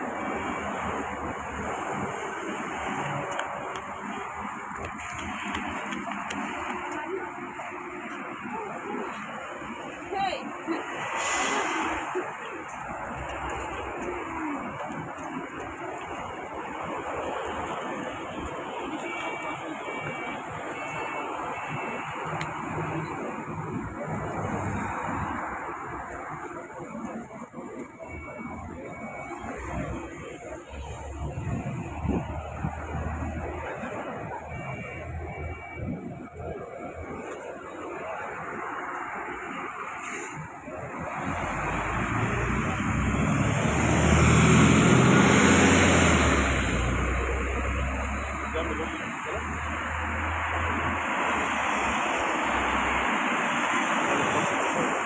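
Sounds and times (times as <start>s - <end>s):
road traffic noise: 0.0s - 55.0s
faint beeps: 0.3s - 11.2s, 11.8s - 49.7s
large vehicle engine passing: 41.2s - 48.9s.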